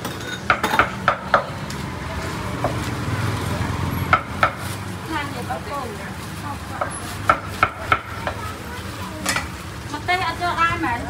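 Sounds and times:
cleaver knocking on wooden board: 4.1s - 4.6s.

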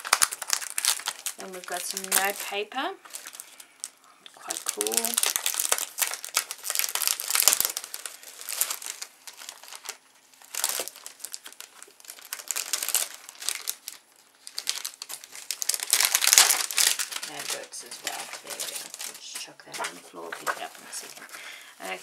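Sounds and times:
tissue paper rustling and crinkling: 0.0s - 22.0s.

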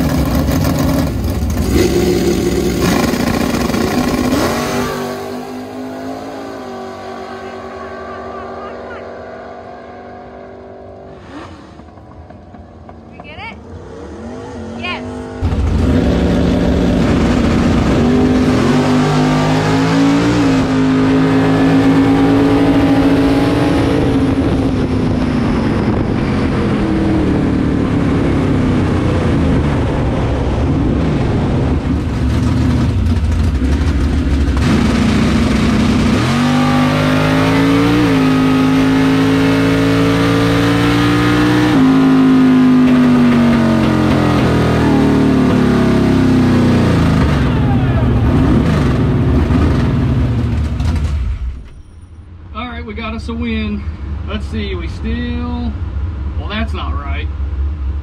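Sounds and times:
drag car engine running: 0.0s - 5.7s, 30.8s - 51.4s.

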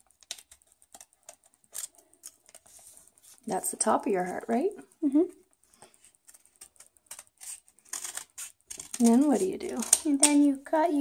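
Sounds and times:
scissors snipping paper: 0.0s - 4.5s, 5.8s - 10.6s.

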